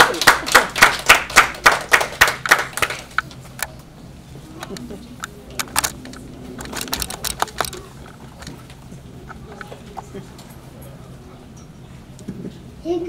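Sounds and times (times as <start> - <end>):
faint low voices: 3.7 - 13.0.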